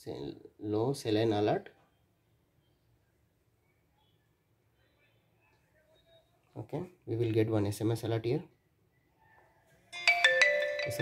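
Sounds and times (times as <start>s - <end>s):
phone notification chime: 10.0s - 11.0s.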